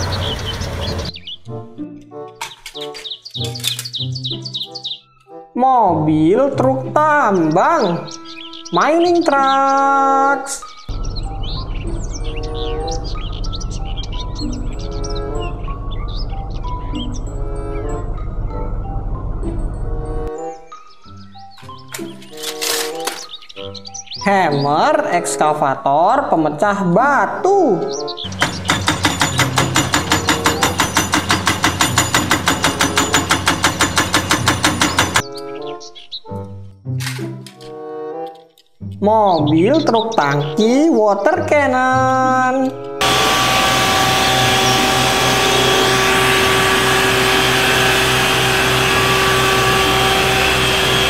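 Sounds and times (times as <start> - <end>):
diesel truck rumble: 0.0 - 1.2, 10.9 - 20.3, 28.3 - 35.2, 42.9 - 51.0
background music: 0.0 - 51.0
hydraulic shovel loading: 43.0 - 51.0.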